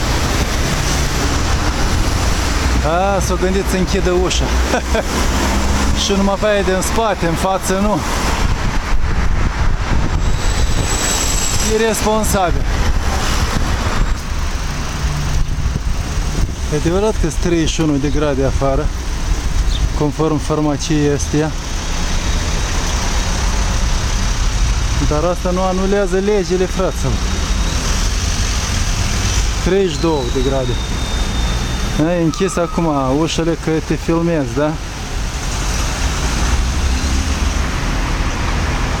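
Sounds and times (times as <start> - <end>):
cars and vans passing: 0.0 - 39.0
street traffic: 0.0 - 39.0
wind buffeting microphone: 8.0 - 18.0.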